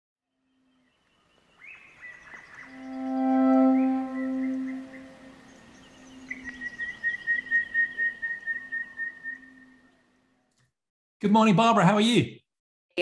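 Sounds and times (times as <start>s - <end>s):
high whistle-like fluttering tone: 2.6s - 6.7s
held low note: 2.7s - 6.4s.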